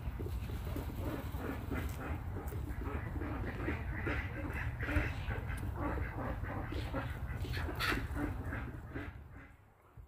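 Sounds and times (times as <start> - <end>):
chickens clucking: 0.0 - 9.5
ducks squawking: 0.6 - 9.6.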